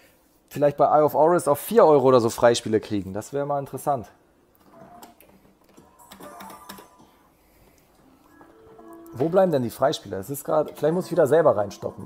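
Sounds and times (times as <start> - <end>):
slot machine short electronic tune: 10.6 - 12.0.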